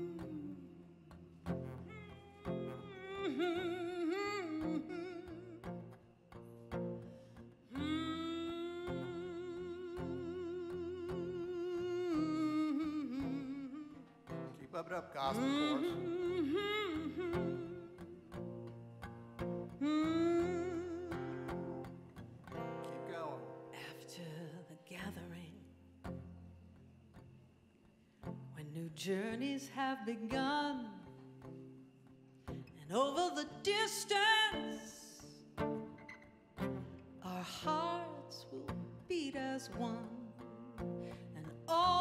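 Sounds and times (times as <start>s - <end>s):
person humming a melody: 0.0s - 0.9s, 2.0s - 5.6s, 7.7s - 14.1s, 15.4s - 18.2s, 19.8s - 21.6s
strummed acoustic guitar: 0.0s - 27.3s, 28.2s - 42.0s.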